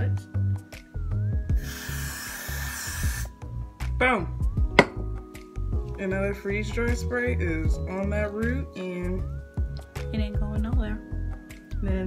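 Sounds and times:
aerosol spray hiss: 1.6 - 3.4.

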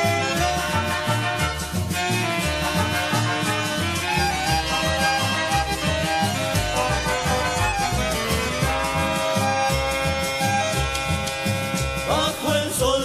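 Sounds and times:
instrumental folk music: 0.0 - 13.0.

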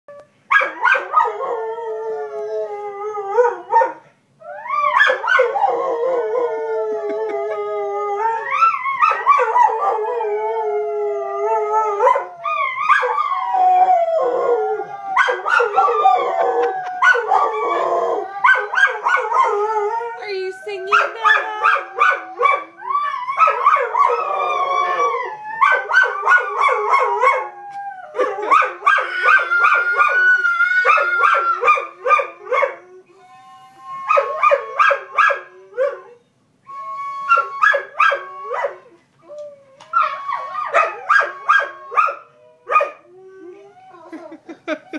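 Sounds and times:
dog howling: 0.8 - 36.2, 36.8 - 44.2.

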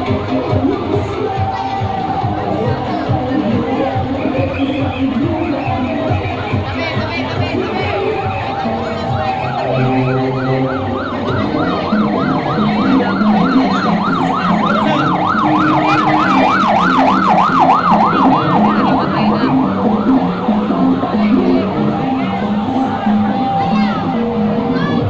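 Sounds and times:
parade music: 0.0 - 25.0
electronic siren yelping: 9.2 - 21.1.

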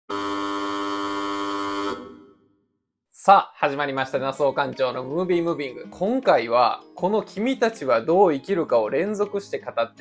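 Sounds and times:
steady buzzer tone: 0.1 - 2.6.

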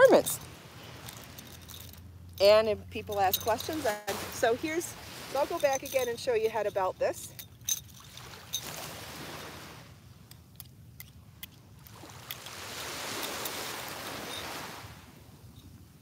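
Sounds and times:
belt buckle metallic clicks: 1.0 - 2.4, 10.3 - 11.6
small waves washing onto shore: 3.1 - 6.9, 7.9 - 10.3, 11.7 - 15.3.

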